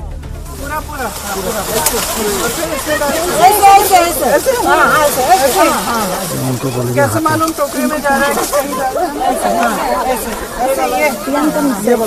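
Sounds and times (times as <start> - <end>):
newsreader speaking: 0.6 - 12.0.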